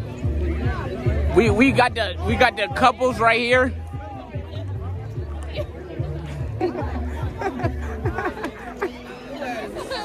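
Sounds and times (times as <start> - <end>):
music with sliding deep bass: 0.0 - 9.0
people chattering: 0.0 - 10.0
person laughing: 6.5 - 9.0.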